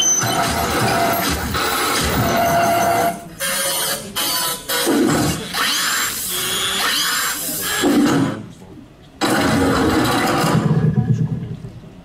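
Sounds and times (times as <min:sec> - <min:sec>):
loud dense noisy sound effect: 0:09.2 - 0:12.0.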